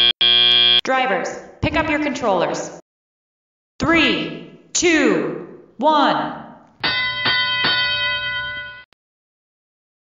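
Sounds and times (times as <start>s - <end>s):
bell struck ringing: 6.8s - 8.9s.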